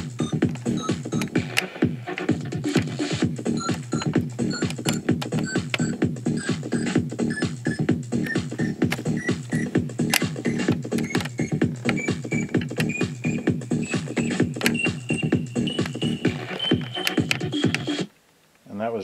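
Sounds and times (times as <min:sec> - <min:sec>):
electronic dance music from boombox: 0:00.0 - 0:18.1.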